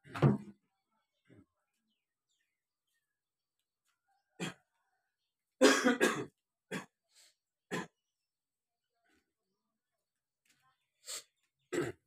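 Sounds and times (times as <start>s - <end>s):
person clearing throat: 5.6s - 7.0s, 11.7s - 12.0s
person coughing: 5.6s - 7.0s.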